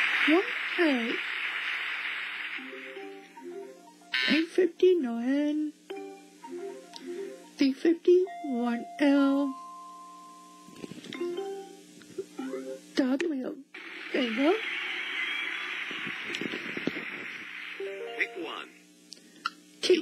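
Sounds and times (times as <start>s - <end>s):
voices: 0.0s - 2.0s, 13.0s - 18.7s
steady rushing noise: 0.0s - 3.1s, 13.8s - 17.8s
music: 2.6s - 13.0s, 17.7s - 18.8s.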